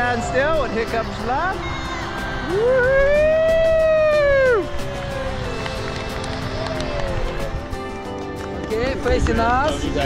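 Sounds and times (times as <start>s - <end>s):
background music with held notes: 0.0s - 10.0s
person cheering woo: 1.7s - 7.8s.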